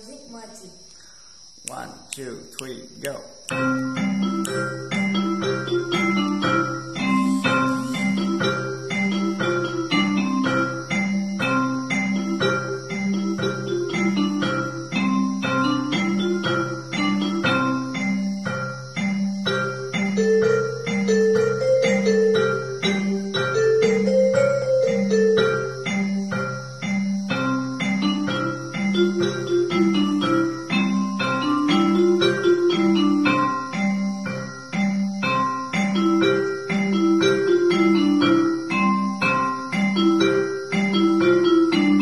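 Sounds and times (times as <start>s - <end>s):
digital piano chords and melody: 3.0s - 42.0s
piano tune: 3.5s - 18.0s.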